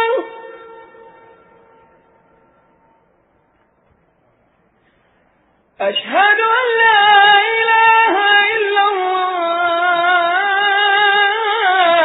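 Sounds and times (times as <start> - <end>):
sung call to prayer: 0.0 - 3.2, 5.8 - 12.0.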